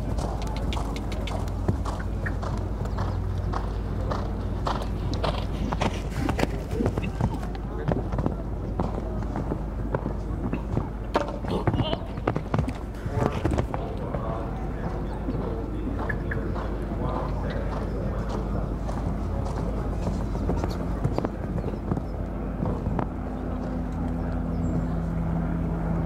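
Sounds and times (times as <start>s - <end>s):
horse hoofbeats on sand: 0.0s - 25.1s
voices talking: 0.0s - 26.0s.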